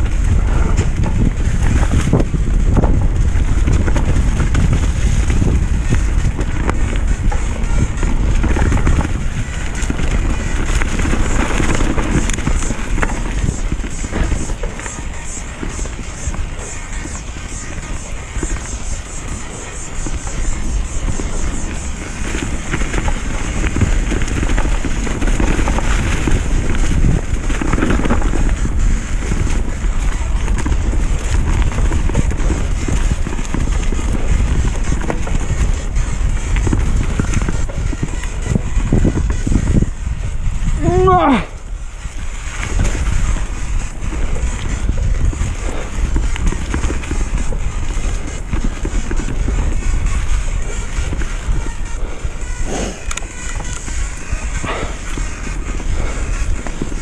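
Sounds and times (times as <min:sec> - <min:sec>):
bike rattling over bumps: 0:00.0 - 0:57.0
tyres rolling over dirt and leaves: 0:00.0 - 0:57.0
wind buffeting microphone: 0:00.0 - 0:57.0.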